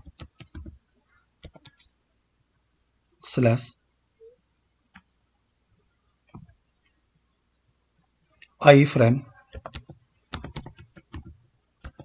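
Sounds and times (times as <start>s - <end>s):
keyboard keystrokes: 0.0s - 0.8s, 9.5s - 12.0s.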